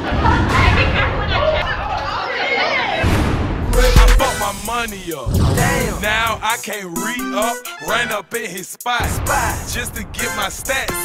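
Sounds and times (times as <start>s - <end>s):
voices talking over one another: 0.0s - 3.1s, 3.7s - 8.7s.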